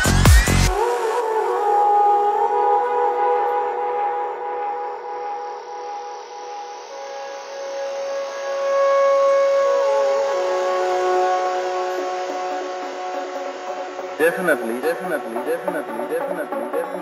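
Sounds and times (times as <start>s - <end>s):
sustained electronic tones: 14.2s - 17.0s.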